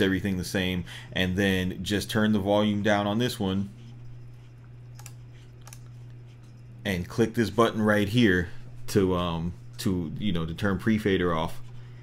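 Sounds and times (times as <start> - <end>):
low hum: 0.0 - 12.0
computer mouse clicks: 4.9 - 6.2.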